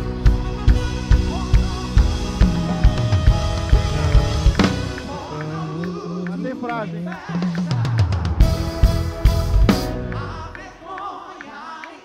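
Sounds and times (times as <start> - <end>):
live band music: 0.0 - 10.8
bass drum hits: 1.2 - 5.3
loud hit across drum kit: 2.0 - 5.4.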